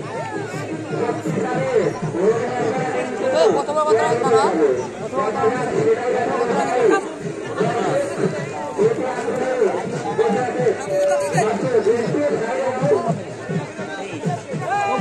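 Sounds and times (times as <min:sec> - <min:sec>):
men talking and calling out: 0:00.0 - 0:15.0.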